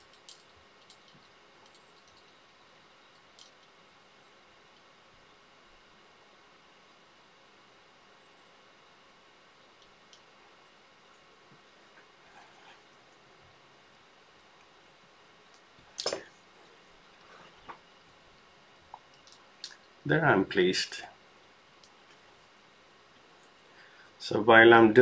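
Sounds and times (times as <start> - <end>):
hands handling feathers clicking: 18.9 - 19.8.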